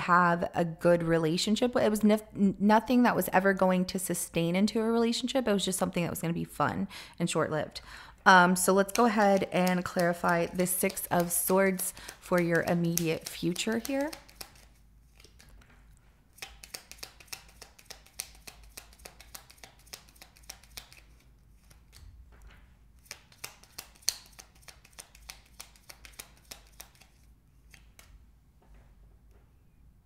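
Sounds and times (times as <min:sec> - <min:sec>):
cards being shuffled: 0:08.8 - 0:22.1, 0:23.0 - 0:28.2.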